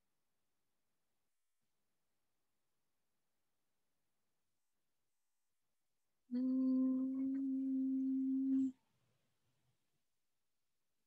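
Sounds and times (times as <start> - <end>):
person humming a held note: 6.3 - 8.8.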